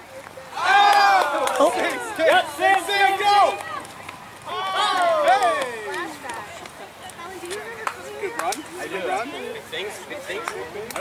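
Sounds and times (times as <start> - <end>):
people calling out and shouting: 0.0 - 11.0.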